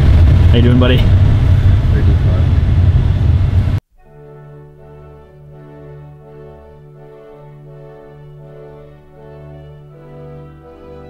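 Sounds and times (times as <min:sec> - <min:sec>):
wind buffeting microphone: 0:00.0 - 0:03.8.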